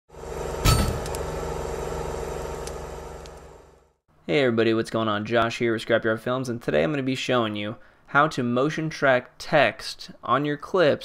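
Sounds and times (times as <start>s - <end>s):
sharp hit: 0.6s - 1.5s.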